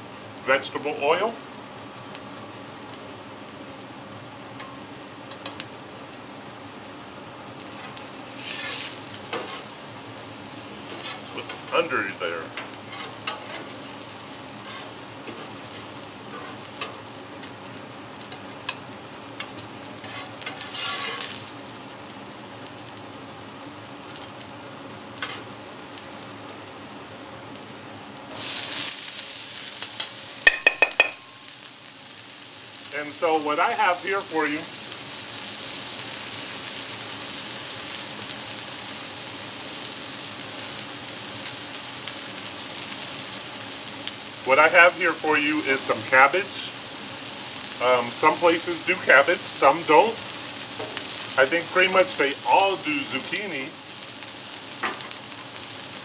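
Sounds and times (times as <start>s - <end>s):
vegetables sizzling on a griddle: 0.0s - 56.0s.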